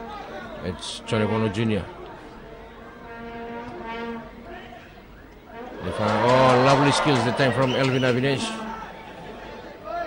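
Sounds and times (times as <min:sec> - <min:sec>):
faint background noise: 0:00.0 - 0:10.0
horn low steady note: 0:03.0 - 0:04.5.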